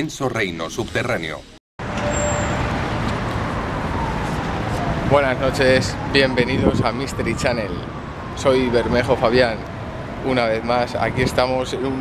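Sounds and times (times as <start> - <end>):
road traffic noise: 0.6 - 12.0.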